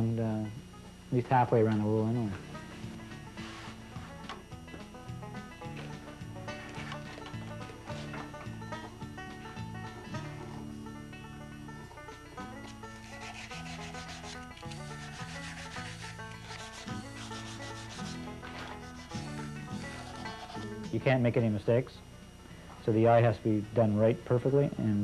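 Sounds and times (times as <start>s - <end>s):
soft guitar music: 0.0s - 25.0s
knife scraping wood: 12.6s - 20.9s.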